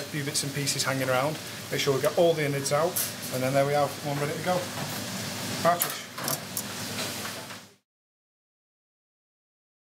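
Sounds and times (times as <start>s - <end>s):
steady hum and hiss: 0.0s - 7.8s.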